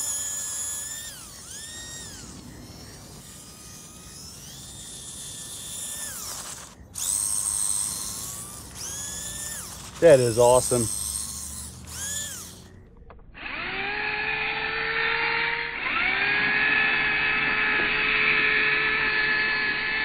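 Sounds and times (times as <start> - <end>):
electric motor whine: 0.0 - 20.0.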